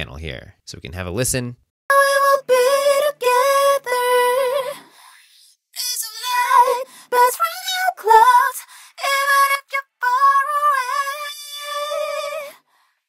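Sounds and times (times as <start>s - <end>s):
women singing unaccompanied: 1.9s - 5.0s, 5.7s - 12.7s.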